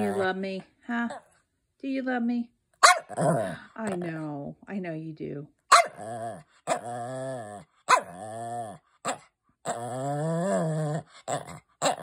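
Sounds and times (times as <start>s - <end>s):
dog moaning: 0.0s - 0.4s, 5.9s - 8.8s, 9.6s - 12.0s
dog yipping: 2.8s - 3.2s, 5.7s - 6.0s, 7.9s - 8.2s.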